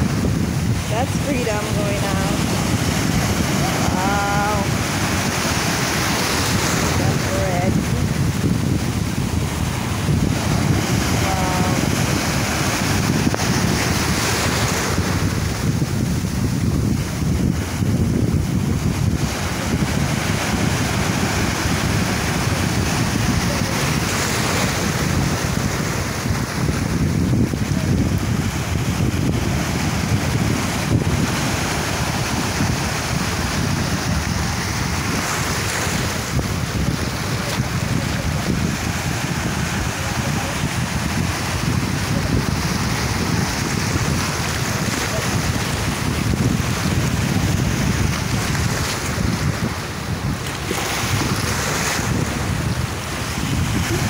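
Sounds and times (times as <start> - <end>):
wind on microphone: 0.0 - 54.0.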